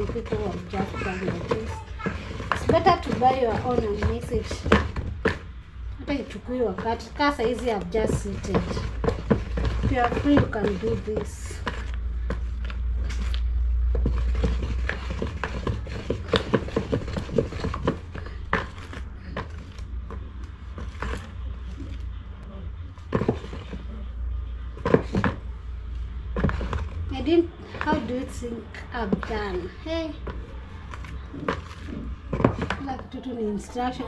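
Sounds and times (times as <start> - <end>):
stick scraping plastic basin: 0.0 - 22.0, 23.0 - 24.1, 24.7 - 25.5, 26.3 - 34.0
steady low hum: 0.0 - 34.0.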